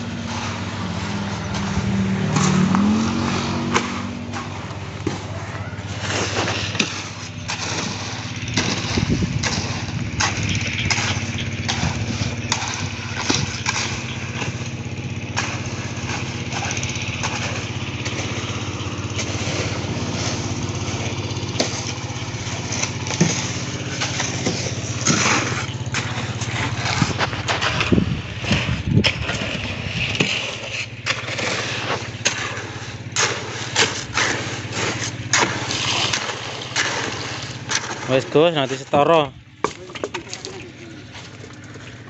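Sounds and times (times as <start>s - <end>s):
shovels scraping gravel and concrete: 0.0s - 42.0s
small engine running: 0.0s - 42.0s.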